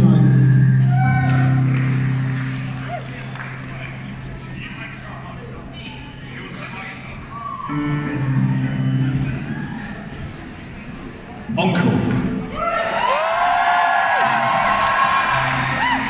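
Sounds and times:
low held chord: 0.0 - 4.4, 7.7 - 9.6
crowd noise in a hall: 0.0 - 16.0.

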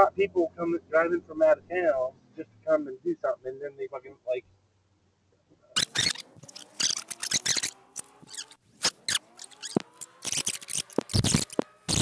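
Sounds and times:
car engine whine: 5.8 - 12.0
high-pitched squeaks and clicks: 5.8 - 12.0.

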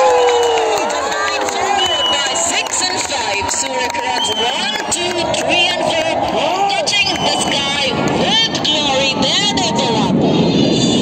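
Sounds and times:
commentator over loudspeaker: 0.8 - 10.6
steady rushing noise: 0.8 - 11.0.

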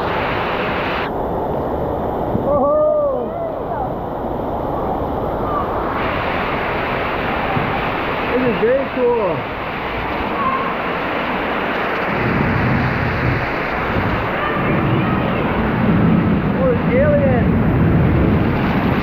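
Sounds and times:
water rushing and splashing: 0.0 - 19.0.

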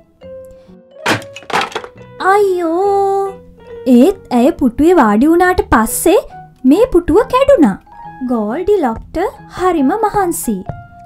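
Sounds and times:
soft background music: 0.0 - 11.0
wooden chair cracking: 1.0 - 2.0.

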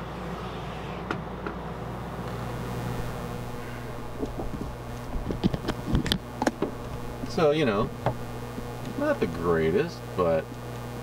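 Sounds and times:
air conditioner humming: 0.0 - 11.0
sharp clicks and knocks: 4.2 - 9.0.

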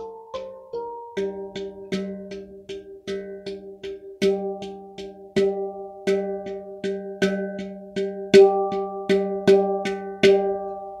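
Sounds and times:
steel tongue drum notes: 0.0 - 11.0.

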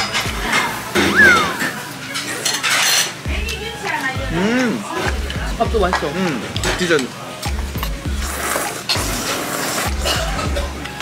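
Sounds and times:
slurping noodles: 7.8 - 10.8.

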